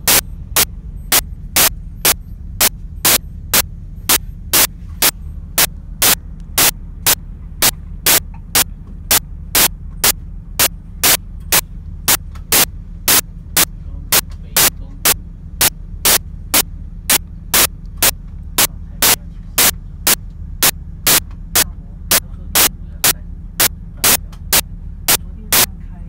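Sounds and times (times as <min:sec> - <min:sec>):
sharp clicks: 0:00.0 - 0:25.7
steady low hum: 0:00.0 - 0:26.0.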